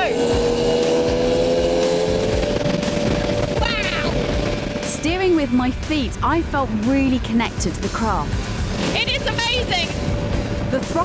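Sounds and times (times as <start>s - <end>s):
boat engine running: 0.0s - 11.0s
music with long held note: 0.0s - 11.0s.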